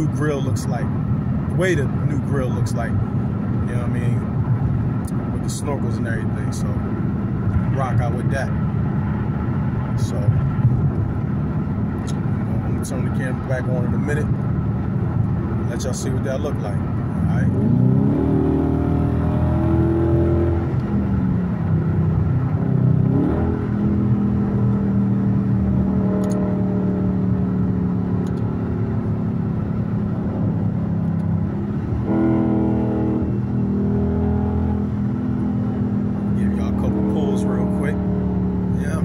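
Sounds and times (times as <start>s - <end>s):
car engine drone in cabin: 0.0s - 39.0s.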